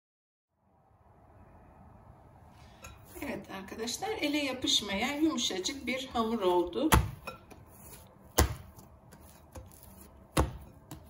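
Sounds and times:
dough thumping in a bowl: 6.8 - 11.0.

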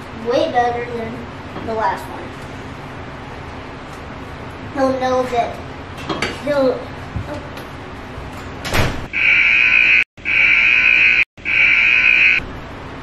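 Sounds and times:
buzzer alarm blasts: 9.1 - 12.4.

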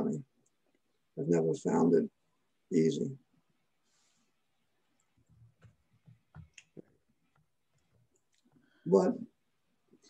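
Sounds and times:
man talking: 0.0 - 0.3, 1.2 - 3.2, 8.9 - 9.3.

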